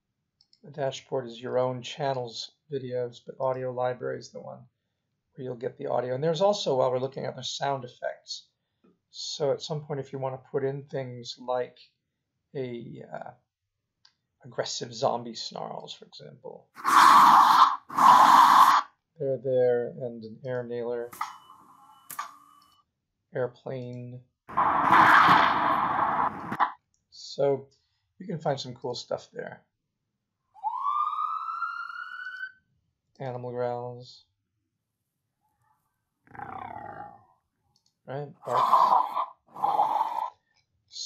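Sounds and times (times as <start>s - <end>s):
animal growl sound effect: 36.3s - 37.2s.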